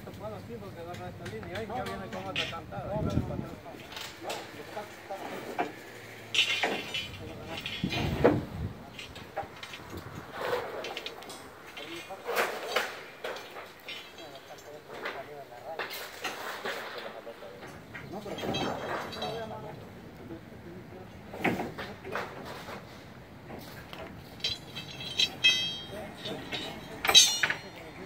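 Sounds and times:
workers talking: 0.0s - 28.0s
knocks and clatter of hand work: 0.9s - 19.8s, 21.3s - 27.9s.

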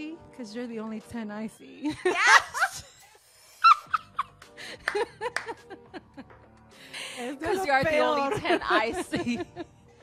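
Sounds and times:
women laughing: 1.8s - 2.9s, 3.6s - 6.3s, 8.1s - 9.8s.

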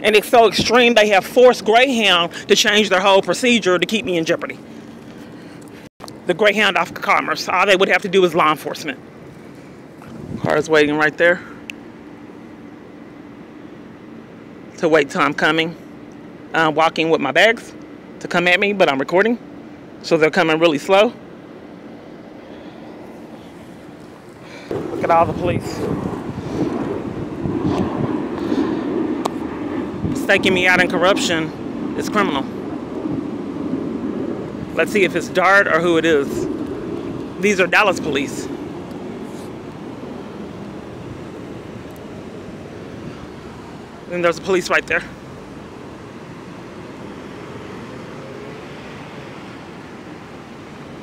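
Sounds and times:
wind buffeting microphone: 0.0s - 5.9s, 8.6s - 11.0s, 22.9s - 51.0s
traffic on a nearby road: 0.0s - 51.0s.

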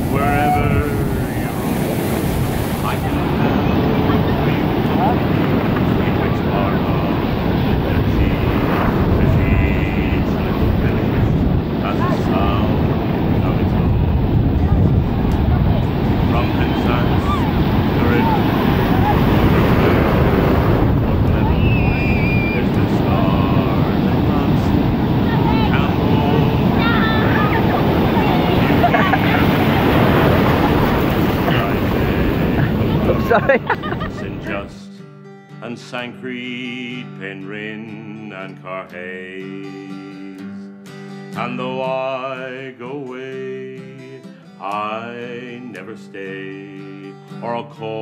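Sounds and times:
people calling out: 0.0s - 34.7s
surf breaking in shallow water: 0.0s - 34.8s
wind buffeting microphone: 0.0s - 34.8s.

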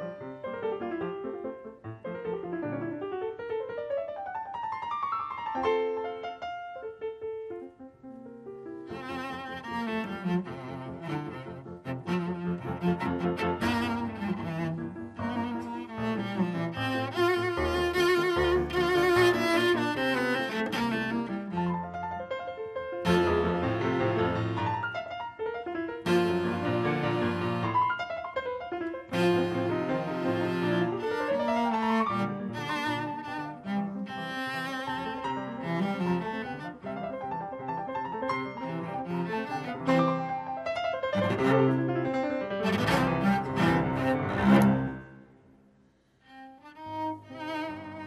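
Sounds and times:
piano accompaniment: 0.0s - 45.6s
bowed cello melody: 8.4s - 45.4s, 46.0s - 48.0s.

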